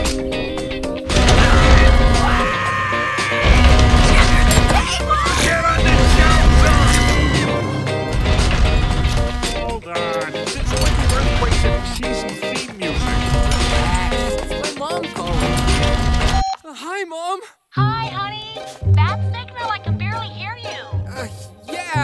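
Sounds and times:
cartoon theme music: 0:00.0 - 0:16.4, 0:17.8 - 0:22.0.

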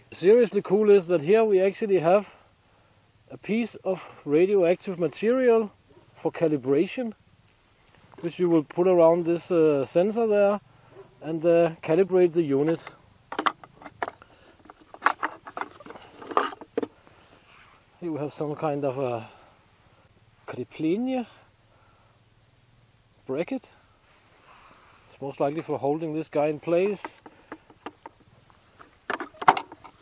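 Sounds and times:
small parts clicking and scraping: 0:12.6 - 0:17.0, 0:26.8 - 0:30.0.

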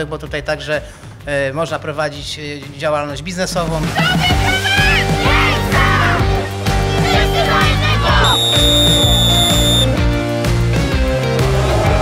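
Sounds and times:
background music: 0:00.0 - 0:12.0
referee's whistle blast: 0:08.2 - 0:10.0.

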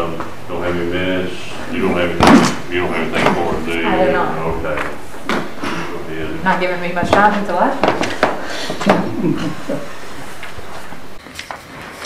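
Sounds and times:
indistinct speech in a room: 0:00.0 - 0:11.2.

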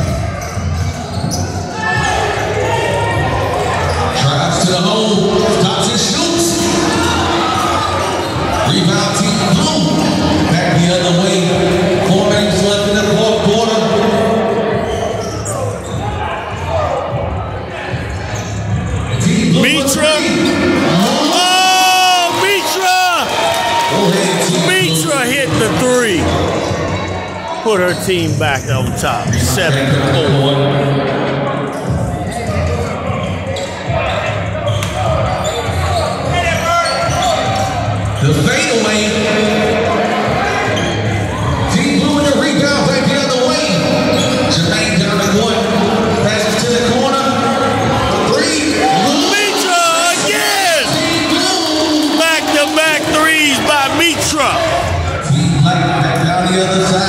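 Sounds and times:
crowd voices in gym: 0:00.0 - 0:57.0
echoing chatter: 0:00.0 - 0:57.0
sneaker squeaks: 0:00.1 - 0:02.5, 0:03.6 - 0:04.3, 0:14.8 - 0:16.1, 0:31.7 - 0:38.3, 0:43.9 - 0:44.6.

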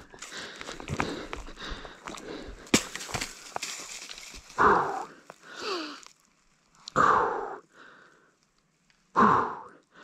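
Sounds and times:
bike tyres rolling over dirt: 0:00.0 - 0:06.8
rider grunting: 0:04.6 - 0:05.8.

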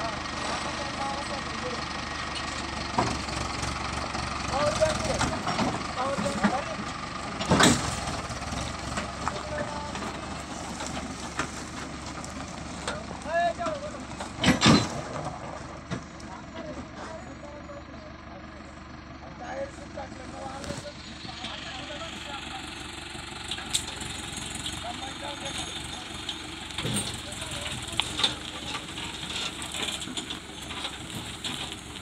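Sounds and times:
tractor engine rumbling: 0:00.0 - 0:32.0
trailers rolling: 0:00.0 - 0:32.0.

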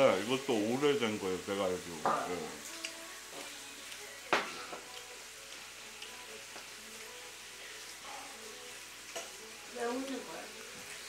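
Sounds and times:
meat sizzling in a pan: 0:00.0 - 0:11.0.

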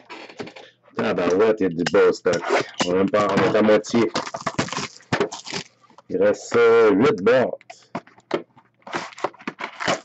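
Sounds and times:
plastic shrink-wrap tearing: 0:04.1 - 0:05.8, 0:08.9 - 0:10.0.

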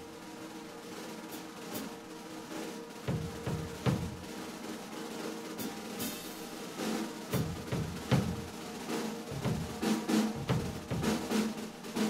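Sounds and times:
cymbal strokes: 0:00.0 - 0:12.0
kick drum hits: 0:10.4 - 0:11.2.

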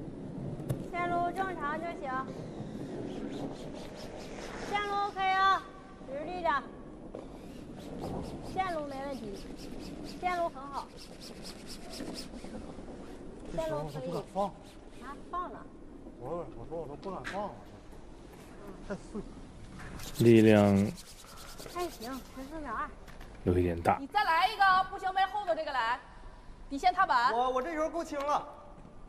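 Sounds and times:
broom sweeping ice: 0:20.0 - 0:22.7.

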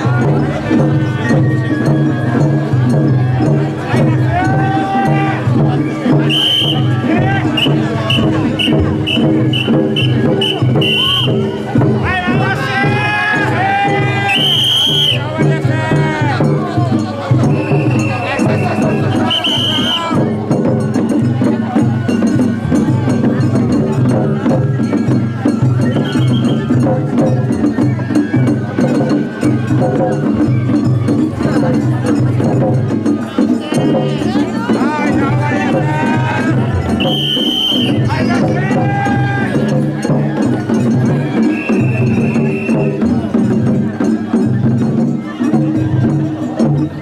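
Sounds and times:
crowd voices: 0:00.0 - 0:47.0
drums: 0:00.0 - 0:47.0
festival procession music: 0:00.0 - 0:47.0.

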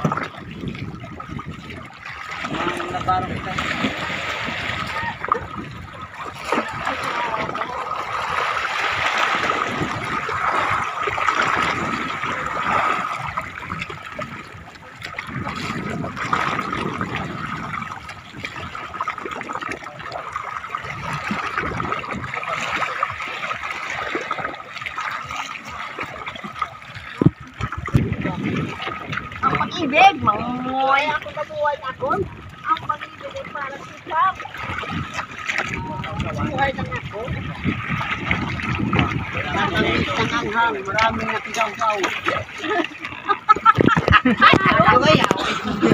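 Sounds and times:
seawater splashing and sloshing: 0:00.0 - 0:45.9.

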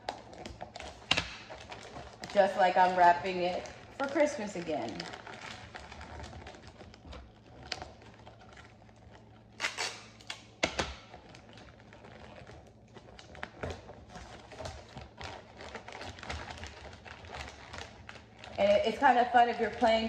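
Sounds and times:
sharp paper crackles: 0:00.0 - 0:20.0
wrapping paper crinkling: 0:00.0 - 0:20.0.

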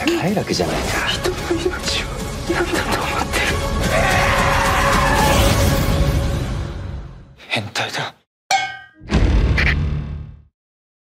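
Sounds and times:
sharp metallic clang: 0:08.5 - 0:09.1.

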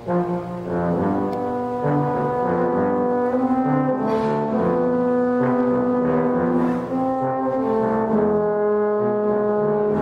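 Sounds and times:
concert band held brass chords: 0:00.0 - 0:10.0
trombone: 0:00.0 - 0:10.0.

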